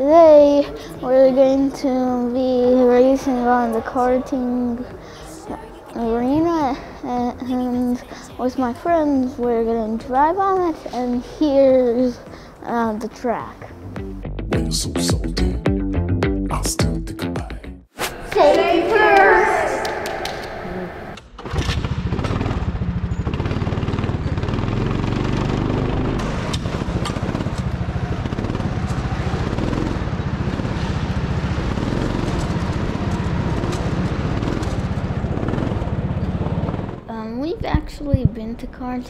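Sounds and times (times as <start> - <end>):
go-kart engine running: 21.4 - 37.2.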